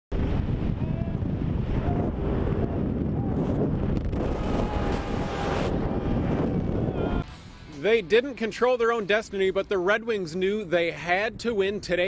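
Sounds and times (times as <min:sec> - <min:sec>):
wind buffeting microphone: 0:00.1 - 0:07.3.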